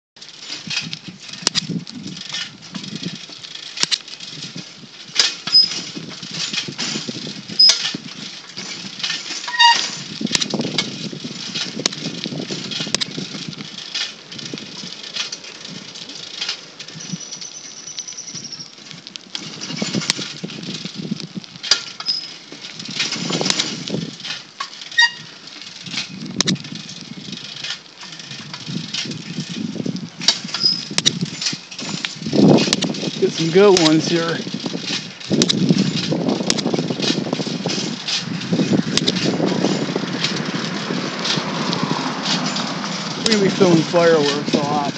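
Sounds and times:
sharp clicks: 0:26.4 - 0:26.6.

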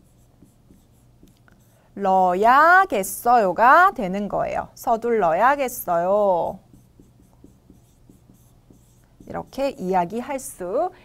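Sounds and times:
marker pen writing on board: 0:00.0 - 0:01.8, 0:06.5 - 0:10.0.

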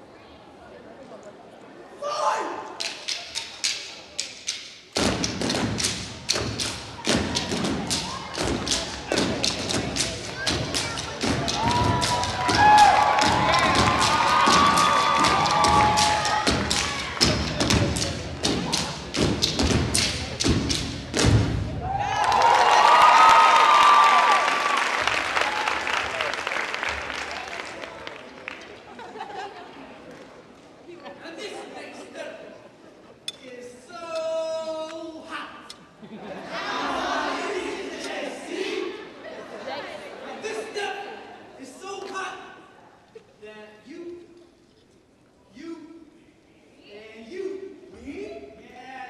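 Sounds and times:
wooden sticks clacking: 0:02.8 - 0:21.3
crowd cheering and applauding: 0:07.6 - 0:19.1, 0:21.7 - 0:28.8
crowd whooping: 0:11.4 - 0:17.6, 0:21.8 - 0:26.4.

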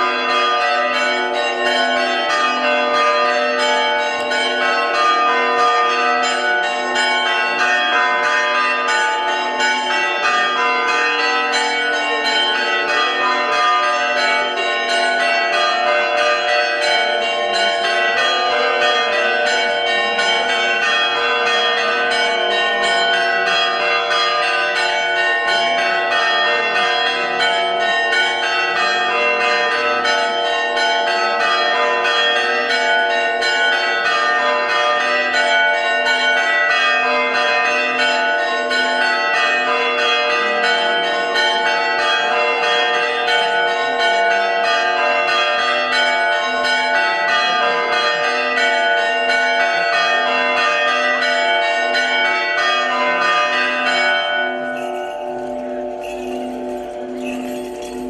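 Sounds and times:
church bells pealing: 0:00.0 - 0:58.0.

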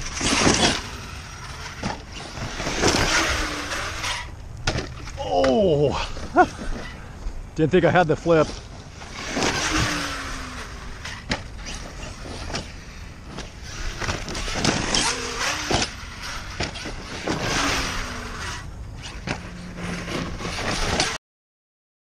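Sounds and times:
electric motor whine: 0:00.0 - 0:04.4, 0:08.8 - 0:21.1
tyres scrabbling through dirt: 0:00.0 - 0:21.2.

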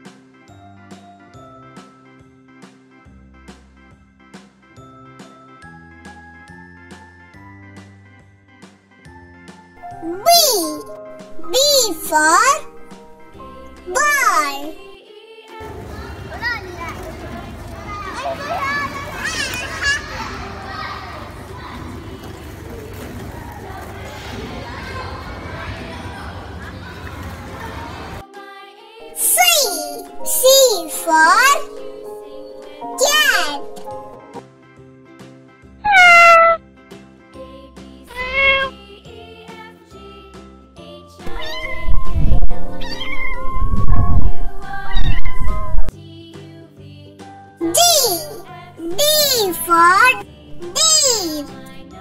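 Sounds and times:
soft background music: 0:05.0 - 0:18.6, 0:28.2 - 0:34.8, 0:36.6 - 0:52.0
children playing: 0:09.8 - 0:15.0, 0:15.6 - 0:28.2, 0:29.1 - 0:34.2, 0:38.1 - 0:38.7, 0:47.6 - 0:52.0
child calling out: 0:09.9 - 0:12.9, 0:13.8 - 0:15.0, 0:29.1 - 0:32.0, 0:32.8 - 0:34.0, 0:35.9 - 0:36.6, 0:38.1 - 0:38.7, 0:41.3 - 0:45.9, 0:47.6 - 0:51.8
cat meowing and yowling: 0:35.9 - 0:36.6, 0:38.1 - 0:38.8, 0:41.3 - 0:45.9.

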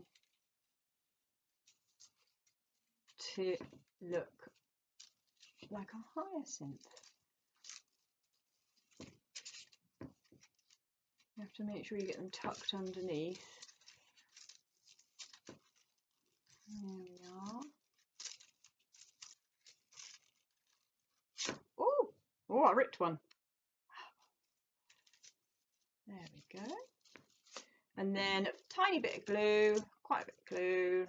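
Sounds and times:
soft rustle: 0:01.6 - 0:21.6, 0:24.3 - 0:30.0.

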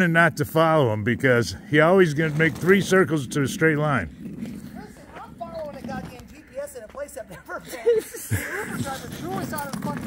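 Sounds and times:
footsteps on pavement: 0:04.1 - 0:10.0.

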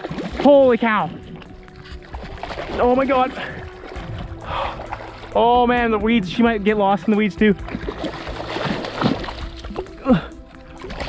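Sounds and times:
fish thrashing and splashing water: 0:00.0 - 0:05.8, 0:07.0 - 0:11.0.

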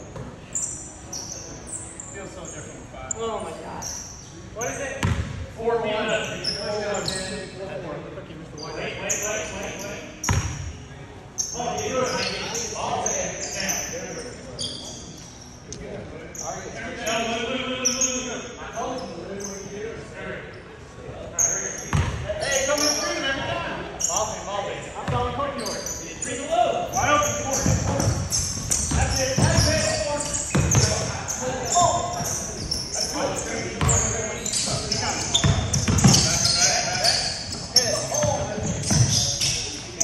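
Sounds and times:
basketball bouncing on hardwood floor: 0:28.9 - 0:29.7, 0:30.5 - 0:31.0, 0:35.4 - 0:36.3.

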